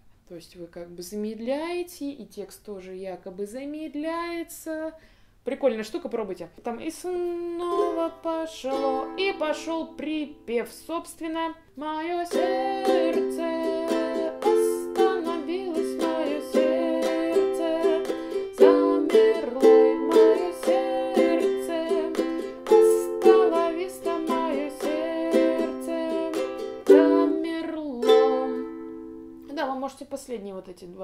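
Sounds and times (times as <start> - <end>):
ukulele strumming: 7.4 - 29.5.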